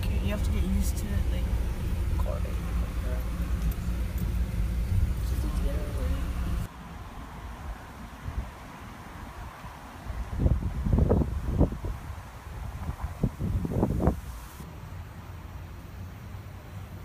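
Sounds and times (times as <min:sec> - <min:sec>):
wind buffeting microphone: 0:00.0 - 0:06.7, 0:07.4 - 0:14.6
low steady rumble: 0:00.0 - 0:08.5.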